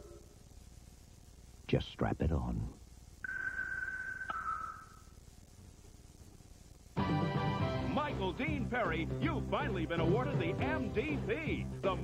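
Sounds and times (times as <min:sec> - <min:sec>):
steady electronic tone: 0:03.2 - 0:05.2.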